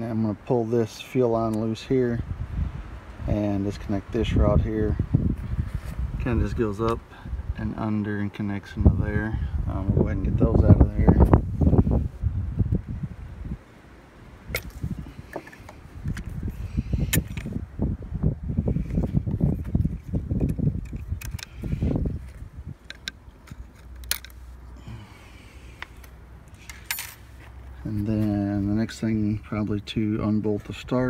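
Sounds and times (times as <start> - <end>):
metal tools clinking: 14.5 - 15.8, 26.0 - 27.8.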